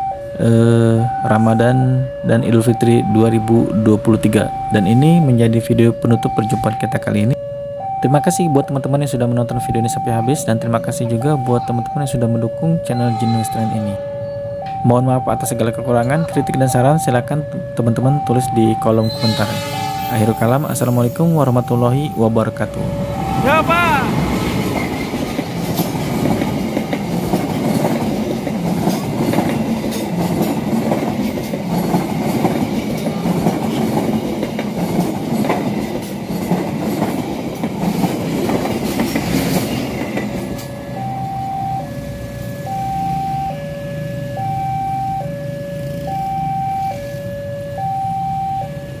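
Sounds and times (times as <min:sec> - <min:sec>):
two-tone beep: 0:01.0 - 0:05.4, 0:09.4 - 0:16.8, 0:22.8 - 0:24.1, 0:41.0 - 0:41.9, 0:42.7 - 0:43.6, 0:44.3 - 0:45.3, 0:46.0 - 0:47.1, 0:47.8 - 0:48.7
train wheels clattering: 0:24.3 - 0:40.8.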